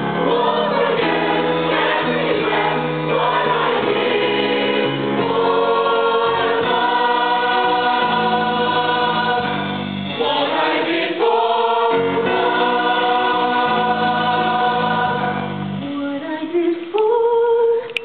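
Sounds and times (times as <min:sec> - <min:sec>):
choir singing in harmony: 0:00.0 - 0:15.9.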